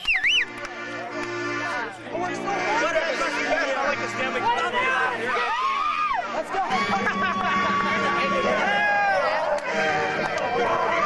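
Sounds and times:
young men talking excitedly: 1.6 - 11.0.

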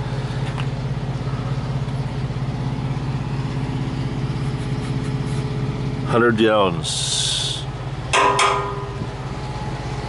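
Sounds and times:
diesel truck engine idling: 0.0 - 10.0
sharp metallic knocks: 8.1 - 9.3.

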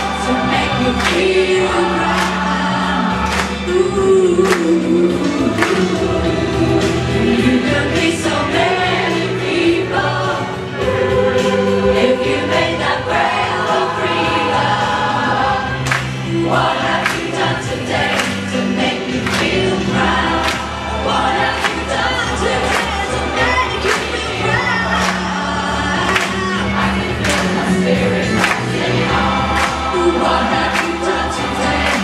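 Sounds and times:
backing track with steady beat: 0.0 - 32.0
choir singing pop song: 0.0 - 32.0.

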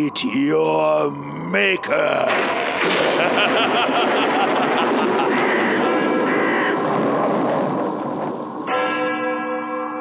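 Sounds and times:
dense noisy wash: 1.6 - 8.7
crow cawing: 4.8 - 6.8.

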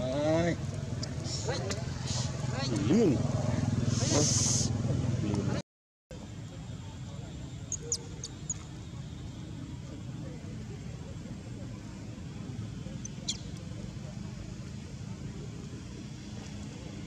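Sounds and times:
low outdoor background rumble: 0.0 - 17.0.

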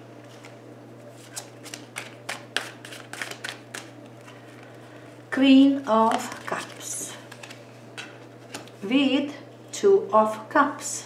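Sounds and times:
cards being shuffled: 0.2 - 4.8, 5.8 - 8.8.

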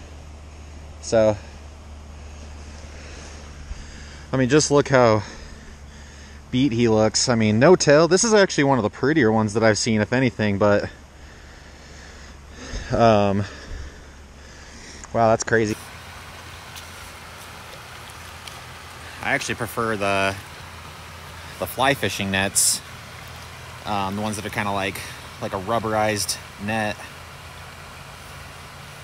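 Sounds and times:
faint hiss: 10.8 - 29.0
splashing water: 15.7 - 29.0
faint light ticks: 16.7 - 19.0.

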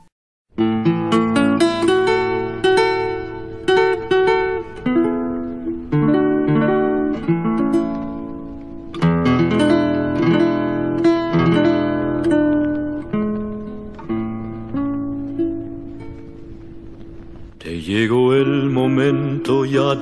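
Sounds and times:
guitar picking a melody: 0.6 - 20.0.

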